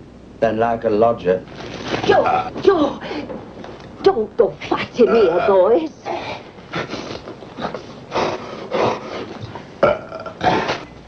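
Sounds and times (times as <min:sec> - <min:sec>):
man retching and gagging: 0:09.8 - 0:10.9.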